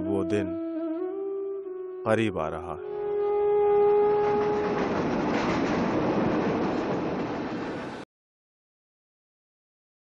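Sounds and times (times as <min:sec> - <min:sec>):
held musical note: 0:00.0 - 0:06.1.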